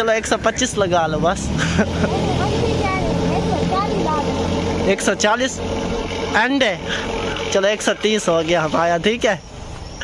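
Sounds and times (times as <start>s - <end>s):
engine droning: 0.0s - 10.0s.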